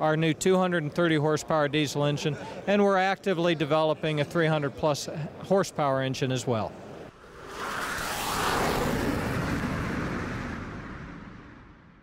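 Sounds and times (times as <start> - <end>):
rushing whoosh: 7.1 - 12.0.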